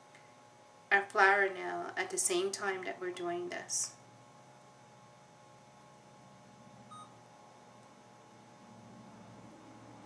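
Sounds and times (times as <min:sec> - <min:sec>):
steady low hum: 0:00.0 - 0:10.0
faint electronic beep: 0:06.9 - 0:07.2.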